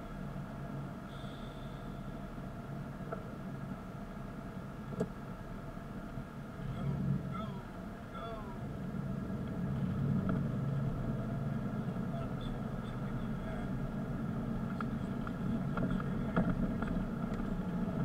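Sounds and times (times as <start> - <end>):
car engine and road noise: 0.0 - 18.0.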